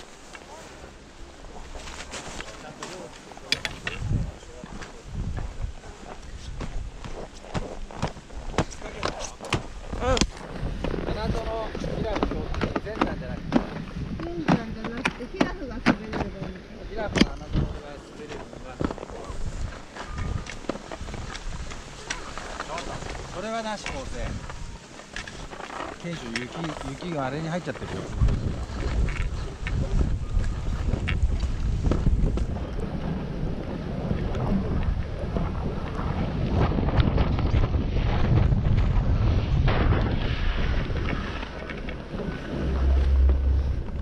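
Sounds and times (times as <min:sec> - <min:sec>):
snow crunching: 0:00.0 - 0:03.5, 0:04.2 - 0:12.4, 0:17.7 - 0:34.2
skis and poles scraping: 0:00.0 - 0:15.5, 0:17.3 - 0:34.2, 0:36.5 - 0:44.0
people talking: 0:00.4 - 0:06.7, 0:08.6 - 0:10.3, 0:11.0 - 0:19.5, 0:22.0 - 0:24.4, 0:26.0 - 0:28.3.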